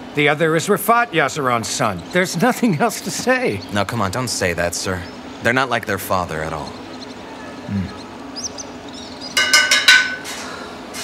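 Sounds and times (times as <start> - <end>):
sharp metallic clinks: 9.4 - 10.3.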